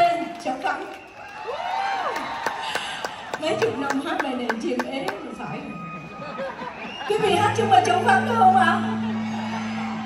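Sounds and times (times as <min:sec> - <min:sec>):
audience clapping: 0:00.0 - 0:05.3.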